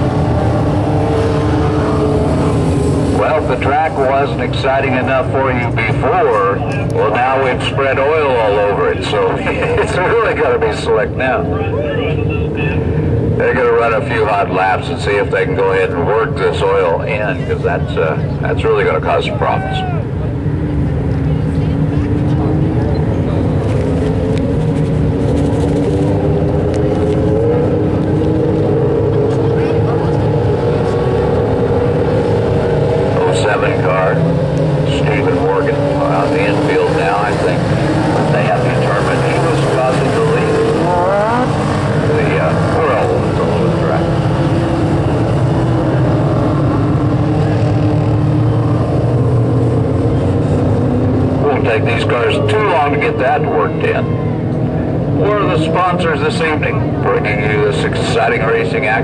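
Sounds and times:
race car engines droning: 0.0 - 59.0
race car passing close: 0.0 - 59.0.

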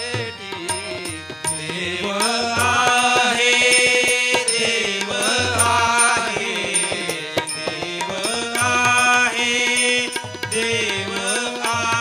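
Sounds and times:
harmonium: 0.0 - 12.0
man singing: 0.0 - 12.0.

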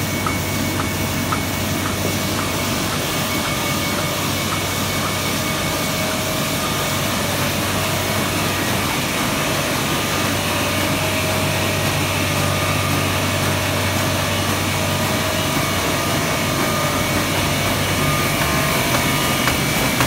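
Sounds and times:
constant machine whine: 0.0 - 20.0
printing press humming: 0.0 - 20.0.

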